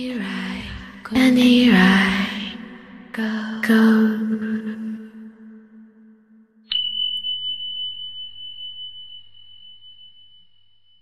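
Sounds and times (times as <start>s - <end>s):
high ringing note: 6.7s - 11.0s.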